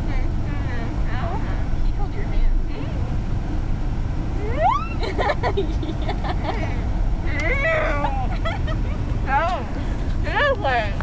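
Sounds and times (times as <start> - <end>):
car interior road rumble: 0.0 - 11.0
person's voice rising in pitch: 4.4 - 5.0.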